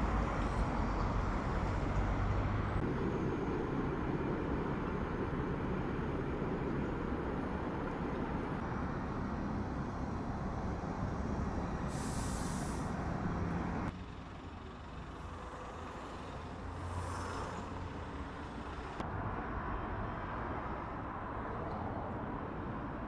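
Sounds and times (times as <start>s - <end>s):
low rumble of traffic: 0.0s - 23.0s
air brake hiss: 11.9s - 13.0s.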